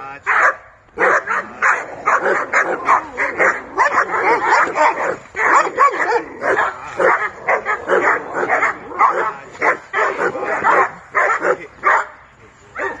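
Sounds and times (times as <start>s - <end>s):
dog barking rapidly: 0.3s - 12.2s, 12.8s - 13.0s.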